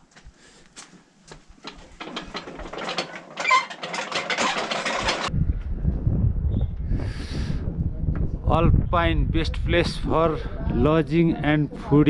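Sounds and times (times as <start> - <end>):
rapid mechanical rattling and clicking: 1.6 - 5.3
low rumble: 5.3 - 12.0.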